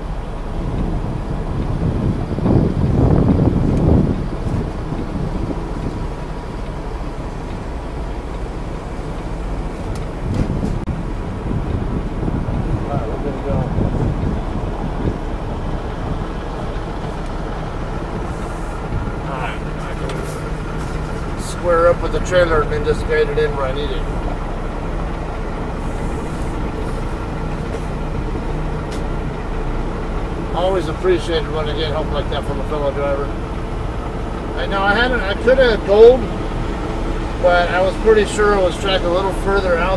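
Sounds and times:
diesel truck engine rumbling: 0.0s - 39.9s.

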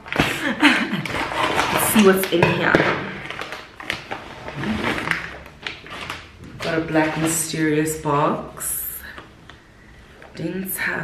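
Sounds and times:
packaging rustling: 3.1s - 7.6s.

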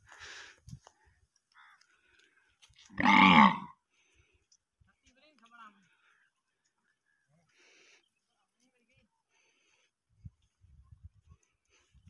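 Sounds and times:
short loud vocal call: 3.0s - 3.7s.

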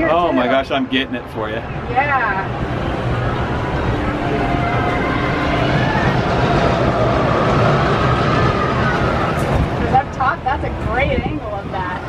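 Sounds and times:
faint voices: 0.0s - 12.0s
steady low rumble: 0.0s - 12.0s.

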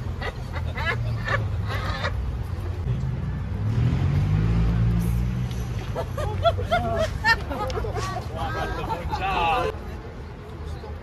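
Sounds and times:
low rumble of traffic: 0.0s - 11.0s
vehicle engine passing: 2.2s - 6.4s.

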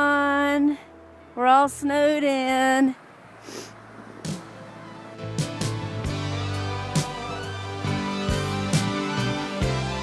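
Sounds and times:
outdoor background hiss: 0.0s - 9.4s.

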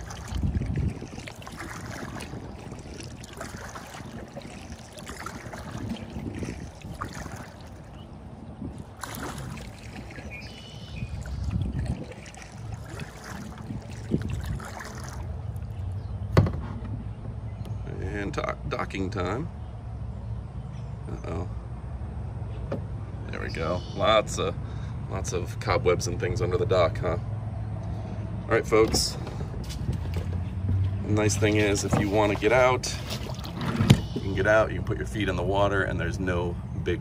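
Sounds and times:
paddle strokes in water: 0.0s - 15.7s, 29.2s - 34.4s
wind on microphone: 0.0s - 15.9s, 28.8s - 32.5s
water moving along hull: 0.0s - 17.2s, 27.9s - 37.0s.

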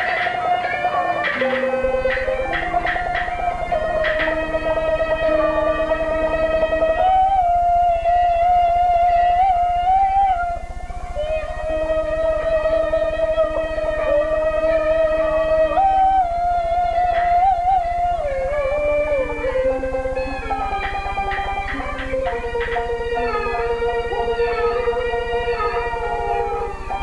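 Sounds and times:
fiddle accompaniment: 0.0s - 27.0s.

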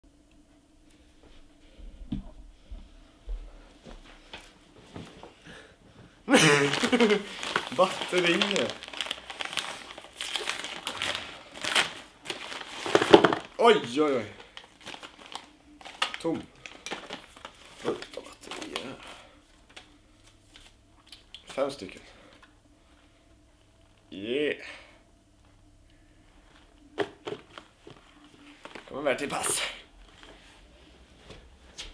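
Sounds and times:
packaging rustling: 6.3s - 21.3s, 26.5s - 30.5s
plastic bag crinkling: 6.3s - 21.4s, 26.5s - 30.4s.

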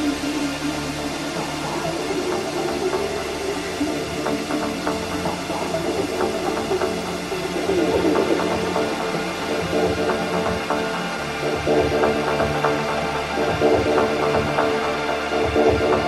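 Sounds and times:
electronic dance music: 0.0s - 16.0s.

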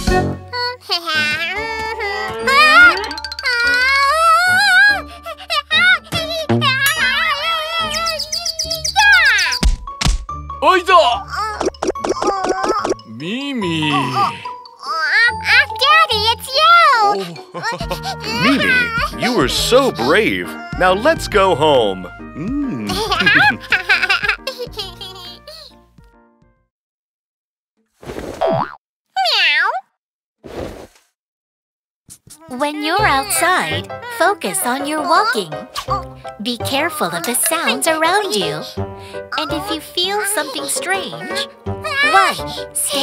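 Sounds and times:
chirpy children's music: 0.0s - 26.7s, 32.4s - 43.0s
cartoon kitten wailing: 2.4s - 4.8s, 18.2s - 19.2s.

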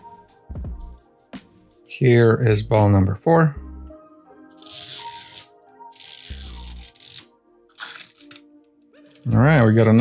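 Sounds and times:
faint background music: 0.0s - 10.0s
plastic wrapping crinkling and tearing: 6.3s - 9.3s.

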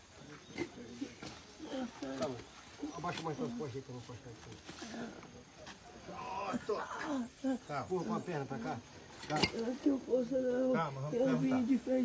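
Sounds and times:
men grunting with strain: 6.1s - 7.8s.

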